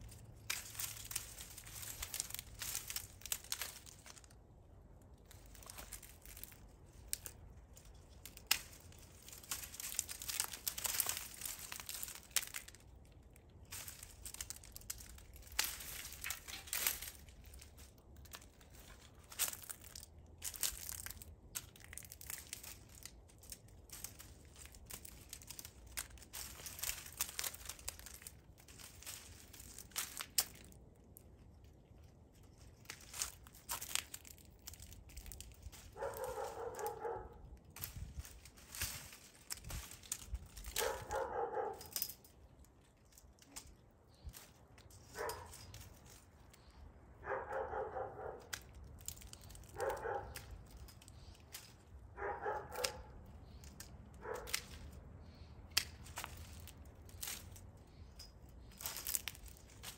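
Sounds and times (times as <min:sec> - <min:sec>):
dry vines crackling and snapping: 0:00.0 - 0:59.9.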